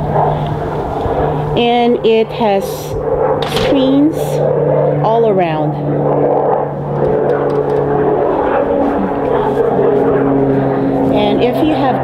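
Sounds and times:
propeller aircraft droning overhead: 0:00.0 - 0:12.0.

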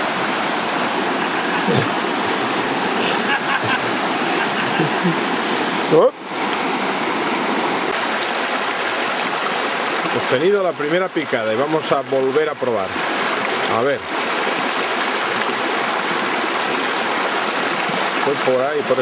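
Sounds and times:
river rushing over rapids: 0:00.0 - 0:19.0
person laughing: 0:01.3 - 0:02.0, 0:03.0 - 0:05.4.

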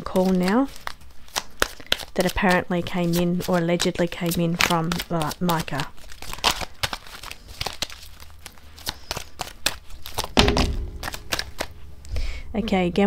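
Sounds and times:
cards shuffling: 0:00.2 - 0:10.4, 0:11.0 - 0:12.1
low thump: 0:10.4 - 0:12.4.

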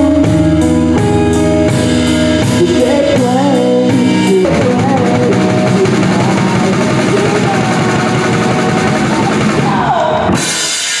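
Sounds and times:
rock band playing: 0:00.0 - 0:11.0.

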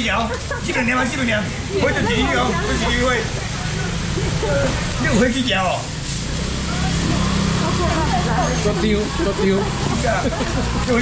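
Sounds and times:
faint market voices: 0:00.0 - 0:11.0.

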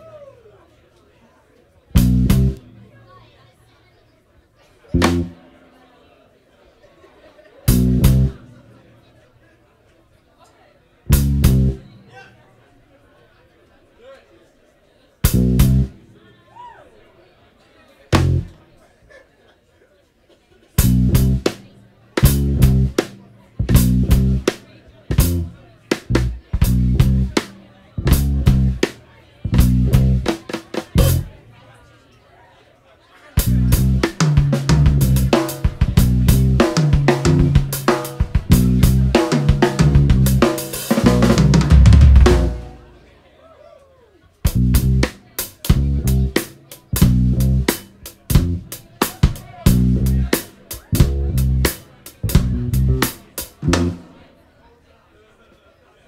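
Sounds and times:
electric bass: 0:02.0 - 0:02.6, 0:05.0 - 0:05.4, 0:07.7 - 0:08.4, 0:11.1 - 0:11.8, 0:15.3 - 0:16.0, 0:18.2 - 0:18.5, 0:20.8 - 0:21.5, 0:22.2 - 0:23.0, 0:23.6 - 0:24.5, 0:25.1 - 0:27.4, 0:28.0 - 0:28.8, 0:29.5 - 0:30.3, 0:31.0 - 0:31.4, 0:33.4 - 0:42.6, 0:44.5 - 0:45.1, 0:45.7 - 0:46.4, 0:47.0 - 0:47.7, 0:48.3 - 0:48.7, 0:49.6 - 0:50.3, 0:51.0 - 0:54.0
live jazz band: 0:02.0 - 0:02.6, 0:05.0 - 0:05.4, 0:07.7 - 0:08.4, 0:11.1 - 0:11.8, 0:15.3 - 0:15.9, 0:18.2 - 0:18.5, 0:20.8 - 0:21.6, 0:22.2 - 0:28.9, 0:29.5 - 0:31.3, 0:33.4 - 0:42.8, 0:44.5 - 0:54.1
drum kit: 0:02.0 - 0:02.7, 0:05.0 - 0:05.5, 0:07.7 - 0:08.5, 0:11.1 - 0:11.8, 0:15.3 - 0:16.0, 0:18.2 - 0:18.6, 0:20.8 - 0:31.3, 0:33.4 - 0:42.9, 0:44.5 - 0:54.2.

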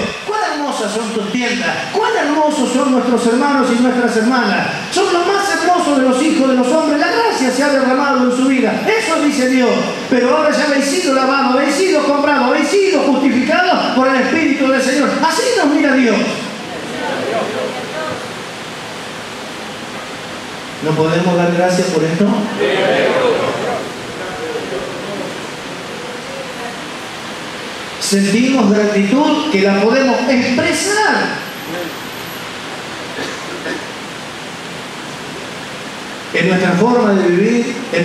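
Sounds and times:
steady background hiss: 0:00.0 - 0:38.0.

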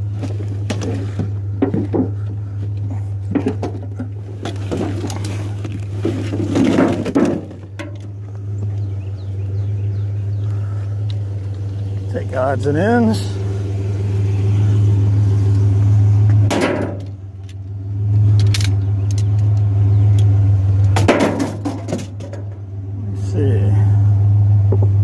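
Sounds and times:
junk clattering and scraping: 0:00.0 - 0:22.8
steady low hum: 0:00.0 - 0:25.0.

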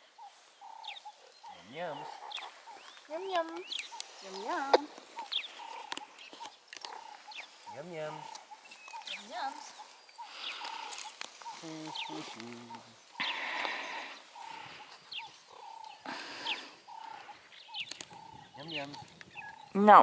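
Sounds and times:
meerkat pups chirping: 0:00.2 - 0:20.0.

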